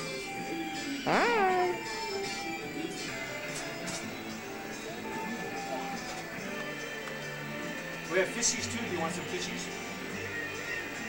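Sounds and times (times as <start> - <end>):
background music: 0.0 - 11.0
girl's high-pitched exclamation: 1.1 - 1.9.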